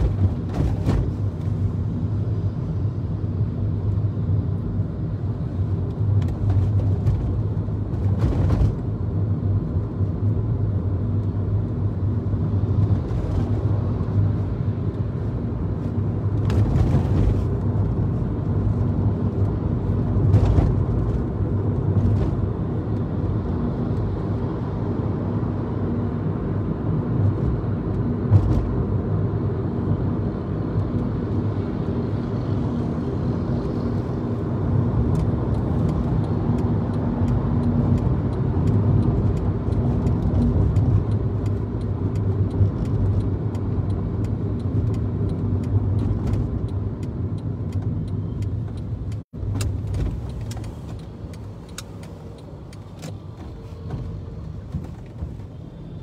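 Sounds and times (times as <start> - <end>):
car engine and road noise: 0.0 - 56.0.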